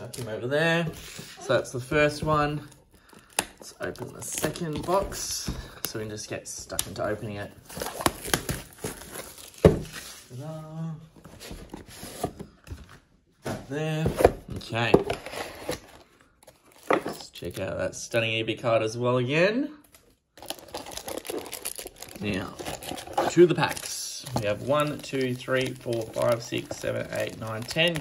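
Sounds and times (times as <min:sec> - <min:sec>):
plastic wrap crinkling: 0:20.0 - 0:28.0.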